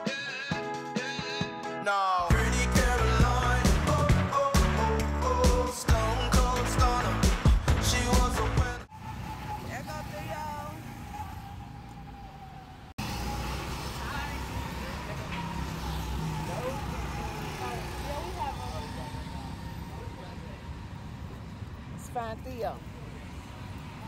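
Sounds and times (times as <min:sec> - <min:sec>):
go-kart engines droning: 0:08.9 - 0:21.4.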